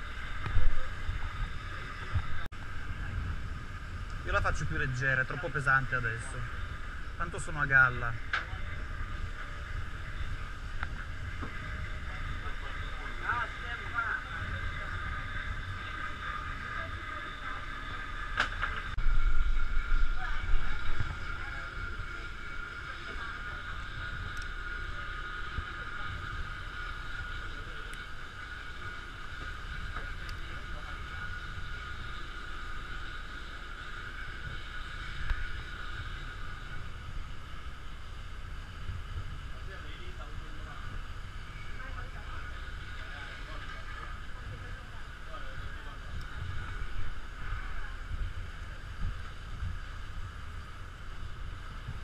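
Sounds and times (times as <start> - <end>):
boat engine droning: 0.0 - 52.0.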